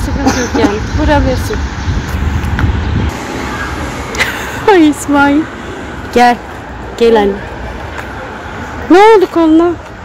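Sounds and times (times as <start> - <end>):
street background noise: 0.0 - 10.0
wind buffeting microphone: 0.0 - 10.0.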